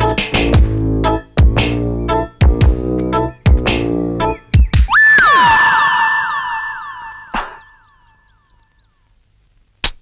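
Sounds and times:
held synth tone with falling zaps: 5.0s - 8.5s.

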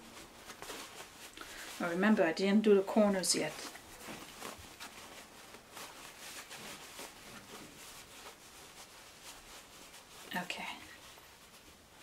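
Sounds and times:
fabric rustling and rubbing: 0.0s - 12.0s.

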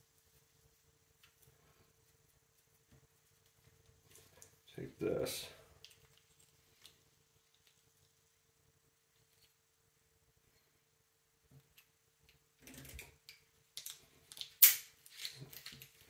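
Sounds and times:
rope and hardware rustling: 13.9s - 16.0s.

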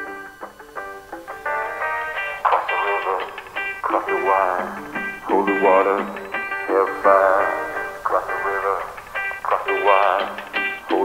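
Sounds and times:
band playing sustained chords: 0.0s - 11.0s
man singing with vibrato: 1.5s - 11.0s.

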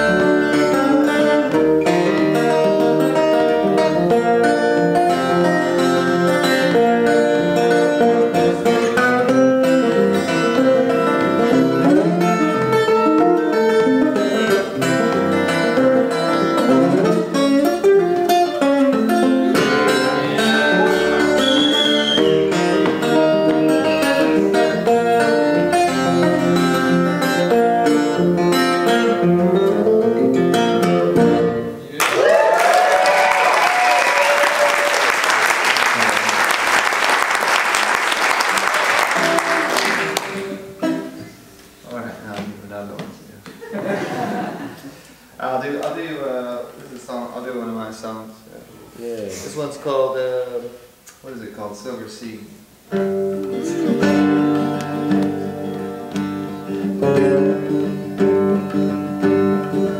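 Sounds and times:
acoustic guitar blues riff: 0.0s - 32.0s, 35.3s - 42.4s, 52.6s - 59.9s
audience applause and cheering: 32.0s - 40.7s.

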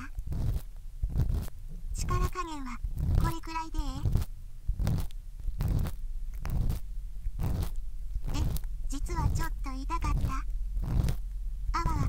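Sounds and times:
ear pick scraping on microphone: 0.0s - 12.0s.

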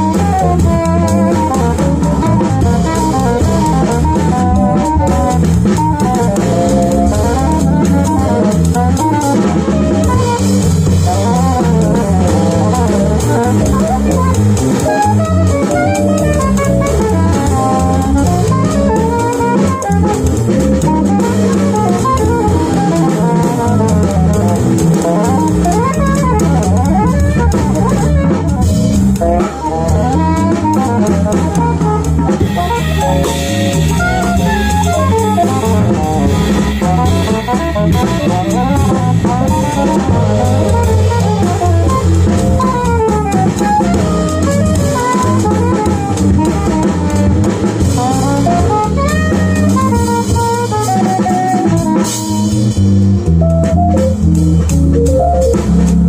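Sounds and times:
drum kit with cymbals: 0.0s - 56.0s
electric bass guitar: 0.0s - 56.0s
saxophone melody: 0.0s - 56.0s.

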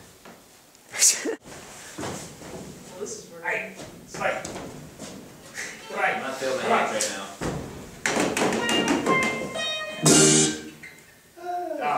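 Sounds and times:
knock: 7.4s - 10.2s
band playing guitar violin and drums: 8.4s - 10.8s.

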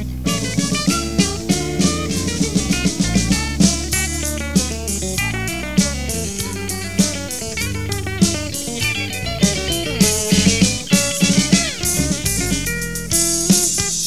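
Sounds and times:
drum kit: 0.0s - 14.0s
electric guitar runs: 0.0s - 14.0s.

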